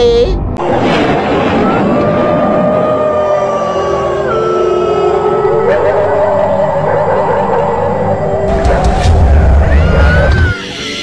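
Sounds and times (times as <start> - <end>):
eerie horror soundtrack: 0.0 - 11.0
wavering howl-like wail: 0.6 - 10.8.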